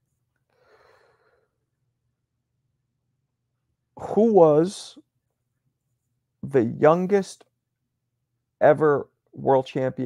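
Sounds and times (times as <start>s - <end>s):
man breathing softly: 0.5s - 1.6s.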